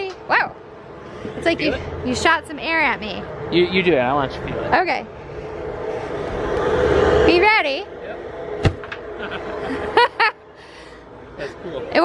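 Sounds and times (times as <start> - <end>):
droning noise with whine: 4.2 - 12.0.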